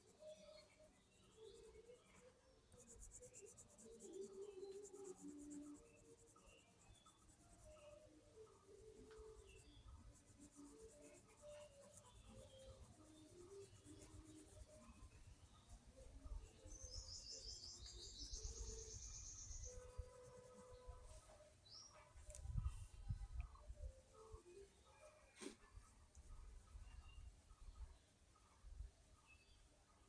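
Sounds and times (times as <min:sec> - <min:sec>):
pencil scratching on paper: 0:09.4 - 0:15.6.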